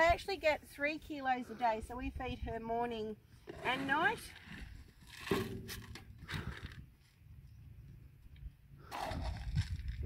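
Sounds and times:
plastic scoop digging in dry feed: 8.9 - 10.0.

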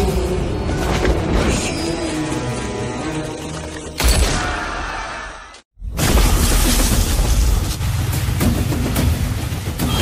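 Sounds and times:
dramatic trailer score: 0.0 - 10.0.

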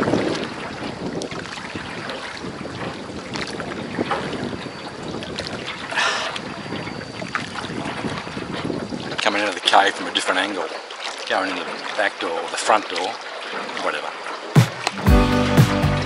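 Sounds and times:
wind buffeting microphone: 0.0 - 9.4
water noise of rowed boat: 0.0 - 16.0.

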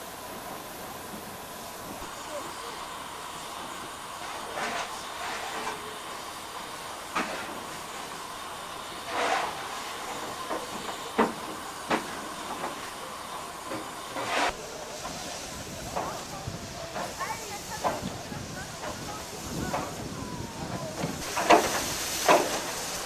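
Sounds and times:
steam locomotive hissing: 0.0 - 23.0.

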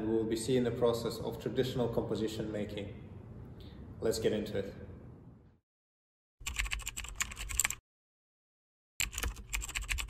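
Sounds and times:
keyboard typing clicks: 6.4 - 7.8, 9.0 - 10.0.

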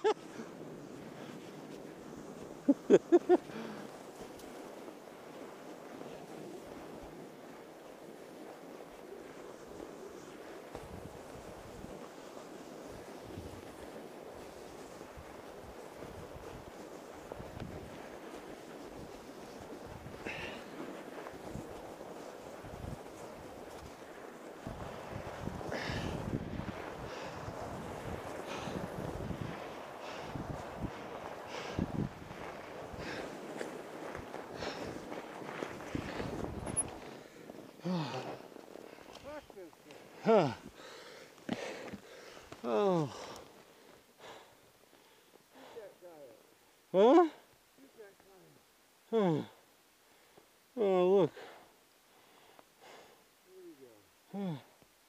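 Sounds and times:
bike tyres rolling on snow: 0.0 - 55.0
wind on microphone: 2.0 - 38.2.

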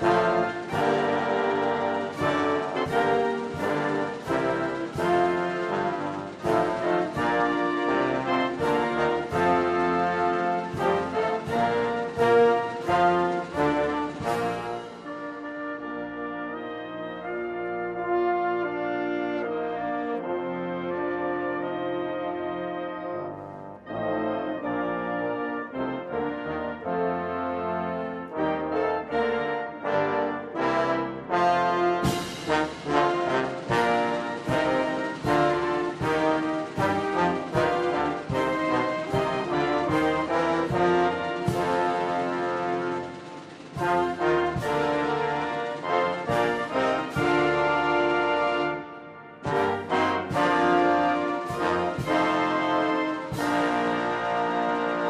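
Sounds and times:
sharp percussion strikes: 0.0 - 15.5, 32.0 - 48.1
brass band playing slow piece: 0.0 - 55.0.

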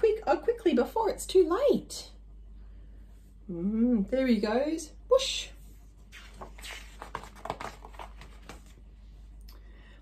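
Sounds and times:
book pages turning: 6.0 - 8.8.

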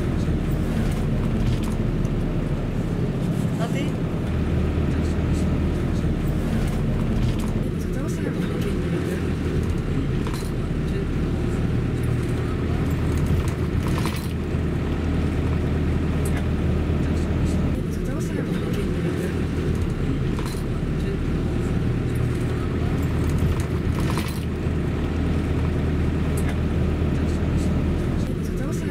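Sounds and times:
car engine and tyre rumble: 0.0 - 28.9.

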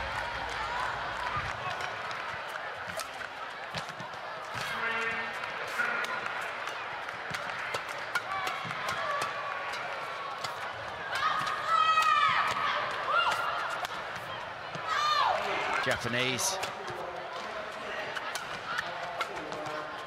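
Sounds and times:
rackets striking shuttlecock: 2.8 - 14.9, 16.6 - 20.0.

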